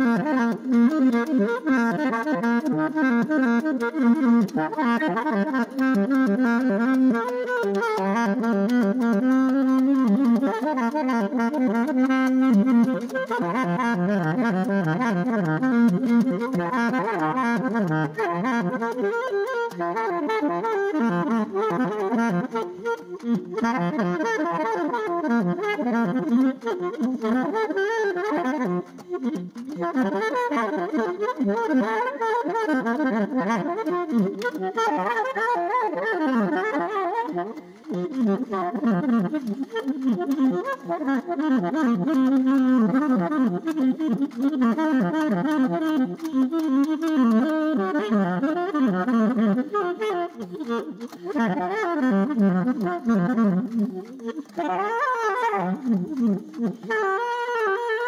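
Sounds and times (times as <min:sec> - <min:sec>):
alto saxophone improvising: 0:00.0 - 0:58.0.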